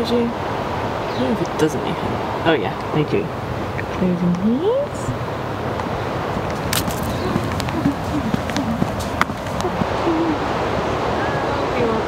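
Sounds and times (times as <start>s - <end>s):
steady rushing noise: 4.9s - 12.0s.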